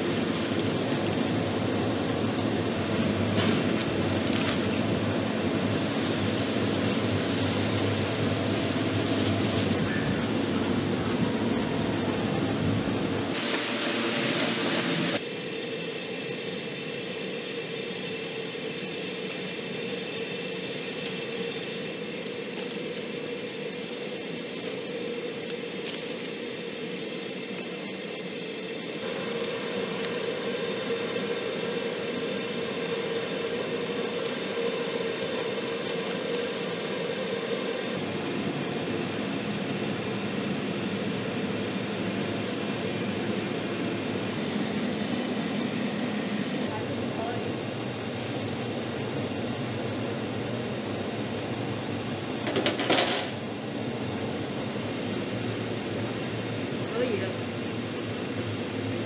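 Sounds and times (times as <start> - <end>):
mechanical roar with hum: 0.0 - 59.0.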